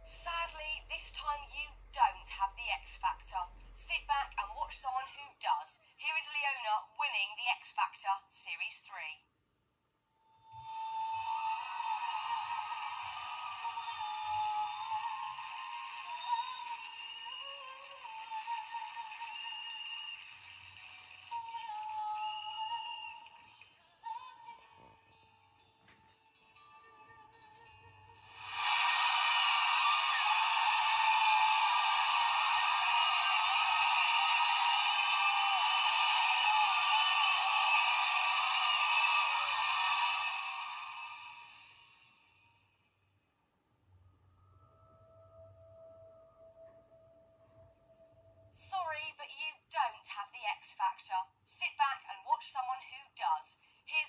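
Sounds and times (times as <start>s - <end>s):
soft backing music: 23.6s - 28.3s.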